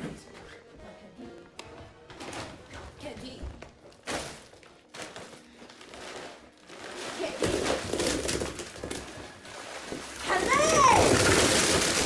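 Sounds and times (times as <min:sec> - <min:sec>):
candy bag rustling and crinkling: 0:04.0 - 0:12.0.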